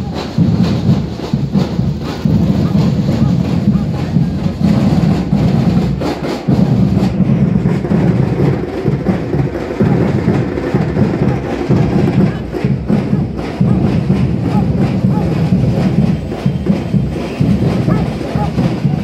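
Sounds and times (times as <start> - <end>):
drum group playing deep drums: 0.0 - 19.0.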